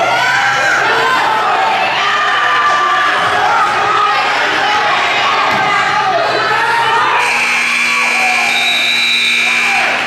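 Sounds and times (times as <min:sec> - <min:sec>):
crowd cheering and shouting: 0:00.0 - 0:10.0
scoreboard buzzer: 0:07.2 - 0:10.0.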